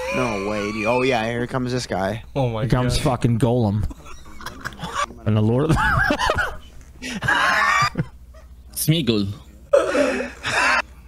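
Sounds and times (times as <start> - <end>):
man laughing: 3.8 - 8.5.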